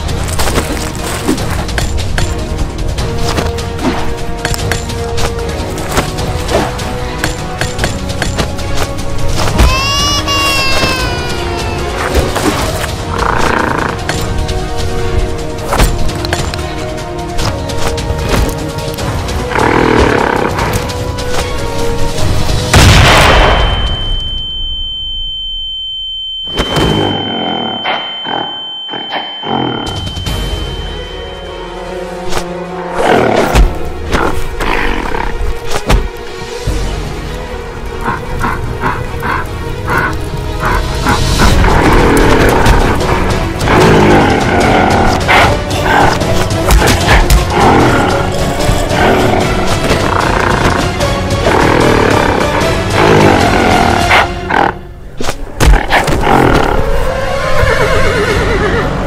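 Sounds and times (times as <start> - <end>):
dense action film music: 0.0 - 59.0
high-pitched ringing tone: 23.5 - 31.7.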